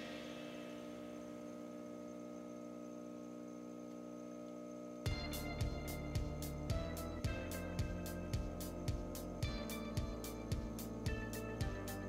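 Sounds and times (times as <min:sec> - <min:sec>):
drone of held tones: 0:05.0 - 0:12.0.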